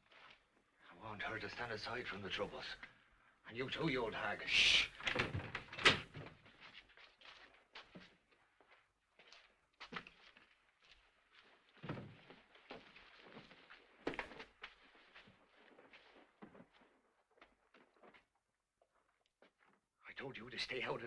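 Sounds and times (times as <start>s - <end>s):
rustles and small knocks: 5.0s - 19.8s
faint footsteps: 6.2s - 19.9s.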